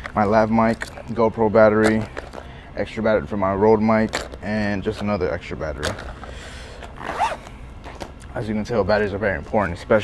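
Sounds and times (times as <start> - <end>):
zipper on plastic pouch: 6.8 - 7.6.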